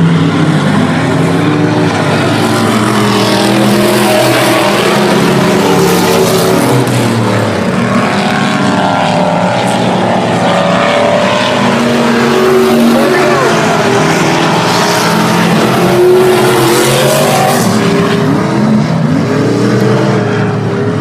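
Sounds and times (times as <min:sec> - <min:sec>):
race car engines running hard: 0:00.0 - 0:21.0.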